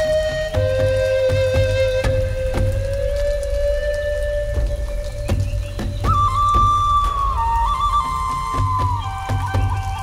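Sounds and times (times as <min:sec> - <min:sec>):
flute long note: 0:00.0 - 0:05.5, 0:06.1 - 0:10.0
rain: 0:00.0 - 0:10.0.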